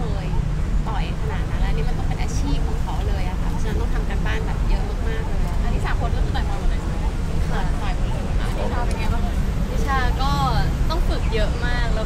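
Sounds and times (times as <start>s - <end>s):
crowd voices talking: 0.0s - 12.0s.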